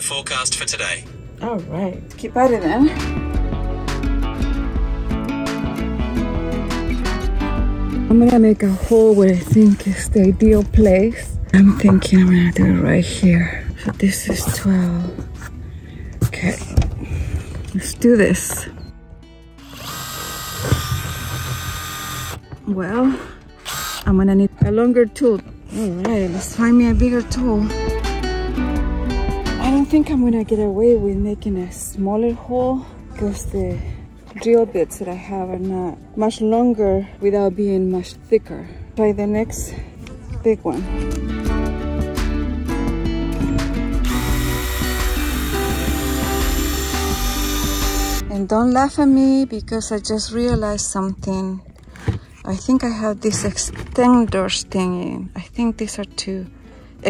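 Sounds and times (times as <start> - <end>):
background music: 0.0 - 57.0
impact driver drilling: 19.6 - 22.4, 23.6 - 24.1, 44.0 - 48.2.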